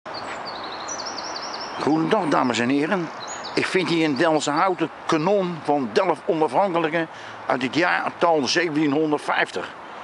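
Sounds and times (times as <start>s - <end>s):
songbird chirping: 0.1s - 9.2s
outdoor background hiss: 0.1s - 10.0s.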